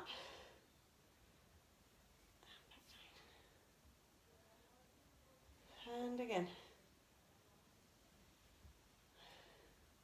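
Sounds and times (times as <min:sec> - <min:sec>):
faint breathy sounds: 0:00.0 - 0:07.6, 0:08.5 - 0:10.0.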